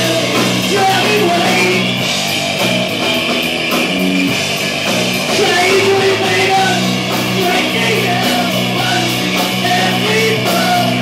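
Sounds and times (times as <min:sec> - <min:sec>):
electric guitar chords: 0:00.0 - 0:11.0
steady drumming: 0:00.0 - 0:11.0.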